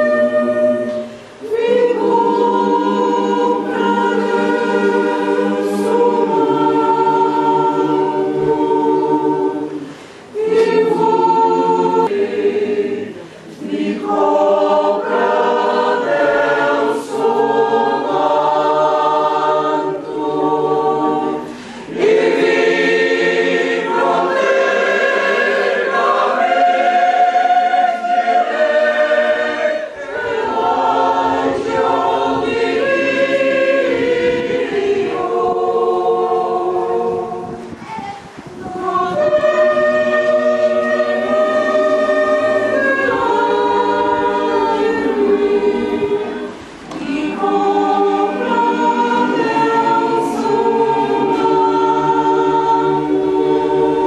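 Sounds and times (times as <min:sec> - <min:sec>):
choir singing: 0:00.0 - 0:54.0.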